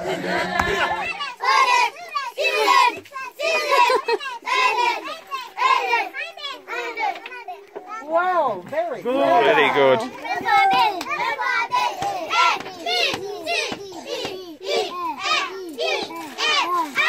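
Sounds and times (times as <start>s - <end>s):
young children talking and calling: 0.3s - 17.0s.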